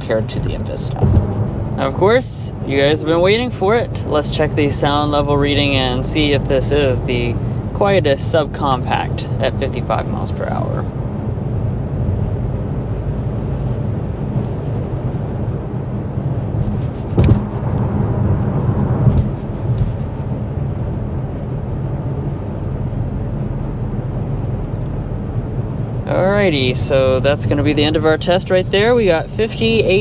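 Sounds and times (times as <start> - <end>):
engine hum: 0.0 - 30.0
road and tyre rumble: 0.0 - 30.0
wind noise: 0.0 - 30.0
short thump: 0.9 - 1.5, 16.8 - 17.7, 19.0 - 20.1.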